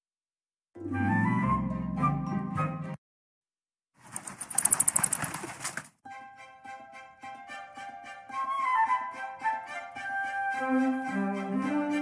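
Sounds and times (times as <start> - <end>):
cartoon bat wings fluttering: 4.0 - 5.9.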